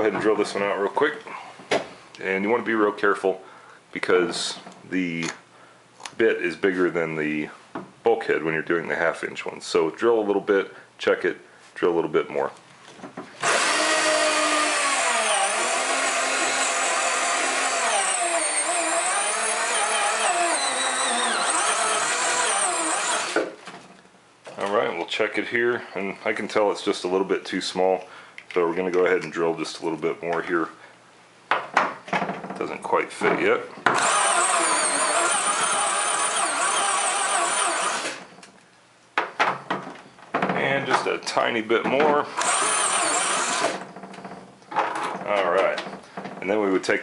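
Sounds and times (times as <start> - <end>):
power drill cutting plastic: 13.4 - 23.6, 33.9 - 38.3, 42.4 - 43.9.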